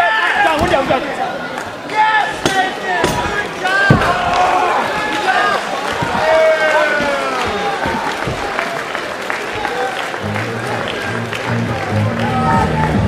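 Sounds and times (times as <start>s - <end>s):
crowd yelling and cheering: 0.0s - 13.0s
sharp thumps: 2.3s - 5.1s.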